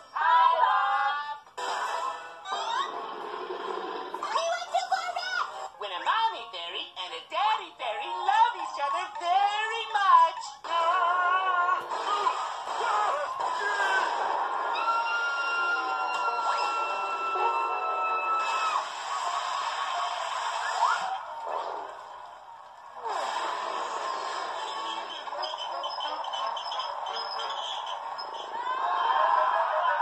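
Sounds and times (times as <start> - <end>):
cartoon sound effects: 1.6 - 3.0.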